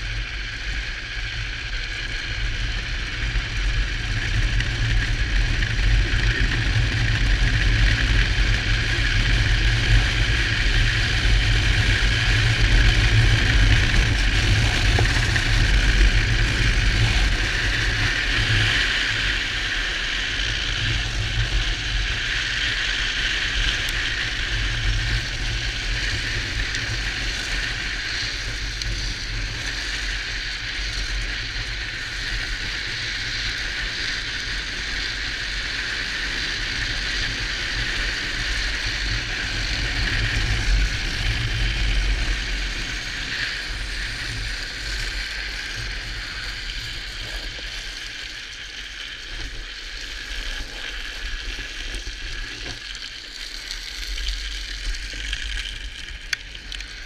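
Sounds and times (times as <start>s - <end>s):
wheels hissing on road: 0.0s - 57.0s.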